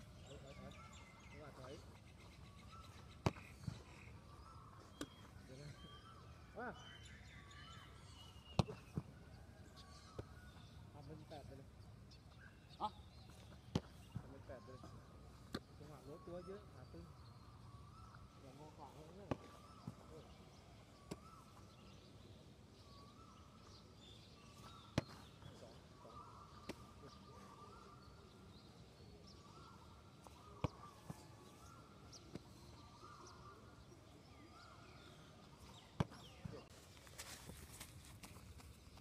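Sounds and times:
bird chirps: 0.0s - 37.4s.

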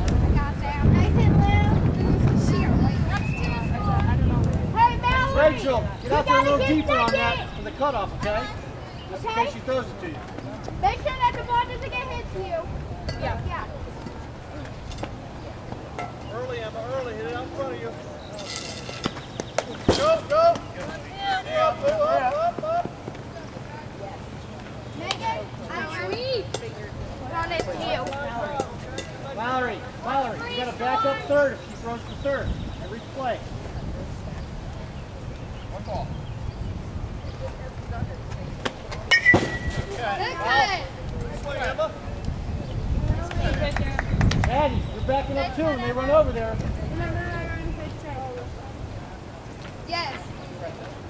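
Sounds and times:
young players calling and cheering: 0.0s - 33.7s, 37.0s - 51.0s
bat striking ball: 18.4s - 20.3s, 39.1s - 40.3s.

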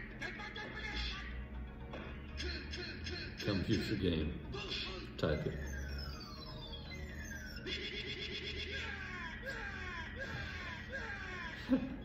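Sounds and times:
warbling cry-like sound: 5.6s - 12.0s.

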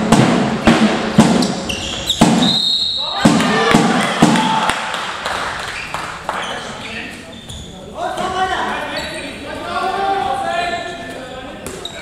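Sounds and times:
shoe squeak: 1.4s - 3.1s, 5.7s - 9.5s, 11.7s - 12.0s
people shouting: 3.0s - 4.8s.

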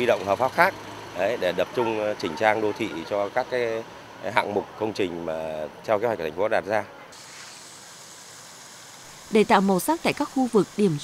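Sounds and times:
fountain water splashing: 7.2s - 11.0s.

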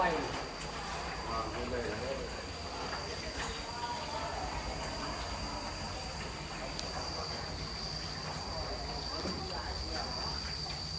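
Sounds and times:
indistinct chatter of people: 0.0s - 10.9s.

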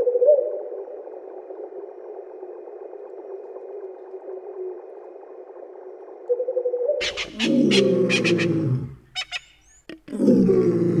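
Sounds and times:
long low animal call: 7.0s - 11.0s.

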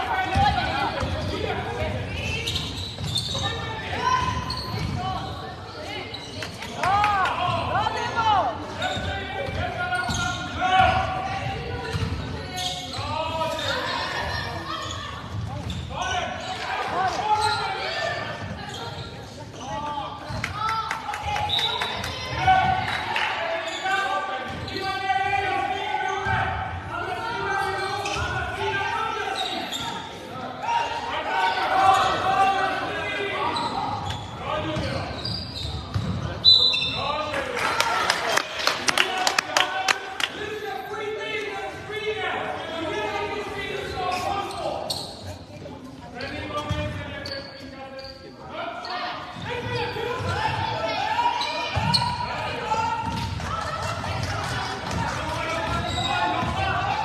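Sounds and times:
voices calling out in hall: 0.0s - 57.0s.

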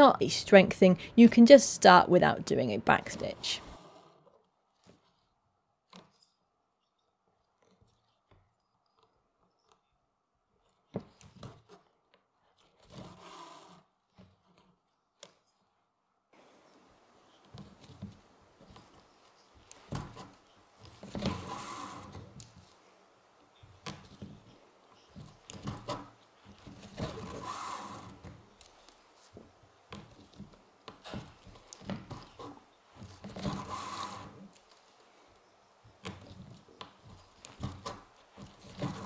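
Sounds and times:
awl and needles clicking: 2.9s - 15.7s, 16.4s - 39.0s
thread rasping through leather: 3.7s - 15.7s, 17.3s - 22.8s, 23.5s - 35.0s, 35.9s - 39.0s.

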